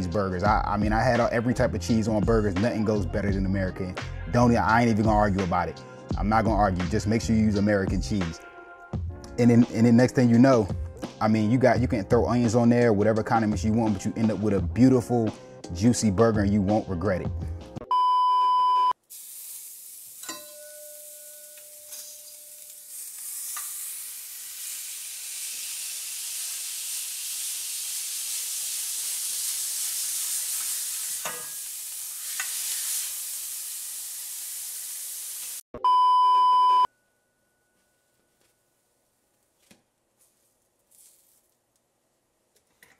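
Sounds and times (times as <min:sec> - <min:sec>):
electronic test-tone beep: 0:17.9 - 0:19.0, 0:35.8 - 0:36.9
skillet sizzling: 0:19.0 - 0:35.6.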